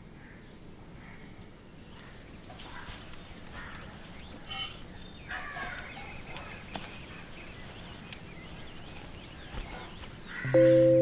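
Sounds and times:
bird calling with wavering call: 4.4s - 11.0s.

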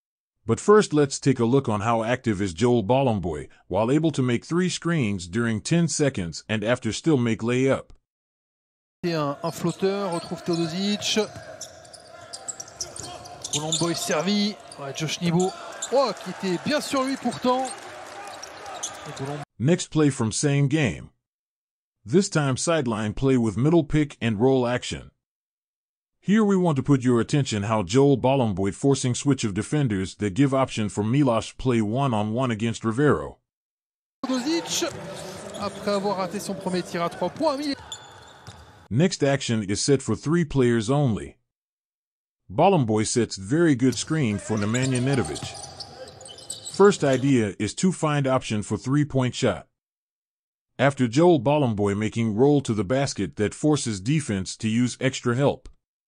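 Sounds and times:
commentator talking: 9.0s - 11.4s, 13.6s - 17.7s, 34.2s - 37.8s, 44.0s - 45.7s
arena crowd noise: 9.0s - 19.4s, 34.2s - 38.8s
basketball bouncing on court: 34.6s - 38.9s, 44.3s - 47.2s
basketball bouncing on hardwood: 38.4s - 38.7s.

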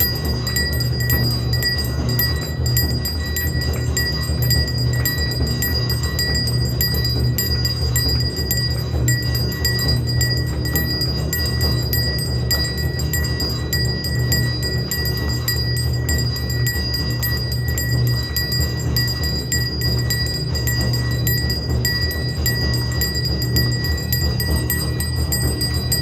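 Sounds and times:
continuous low drumming: 0.0s - 26.0s
temple bells ringing rapidly: 0.0s - 26.0s.

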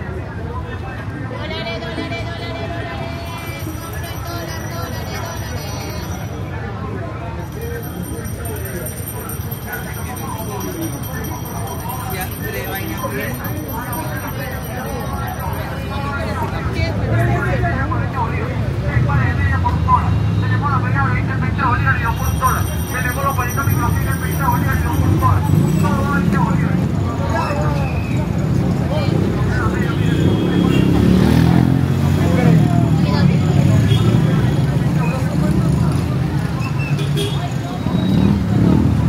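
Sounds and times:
city bus rumbling: 0.0s - 39.0s
passers-by talking: 0.0s - 39.0s
passing traffic: 0.0s - 39.0s.

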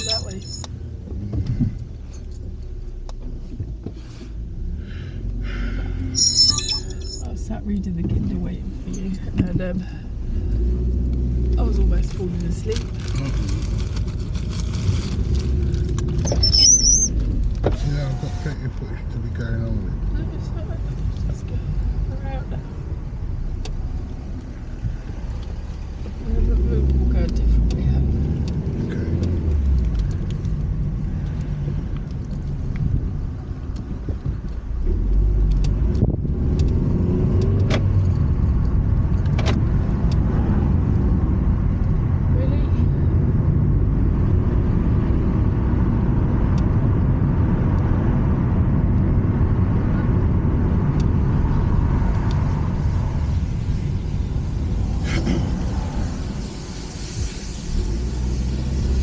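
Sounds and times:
car engine and road rumble: 0.0s - 59.0s.

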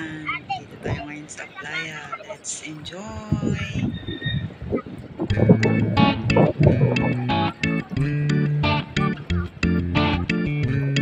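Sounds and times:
background music with steady beat: 5.3s - 11.0s.

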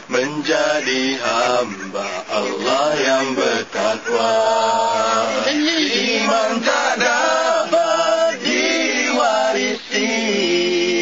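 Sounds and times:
male group singing devotional song: 0.0s - 11.0s.

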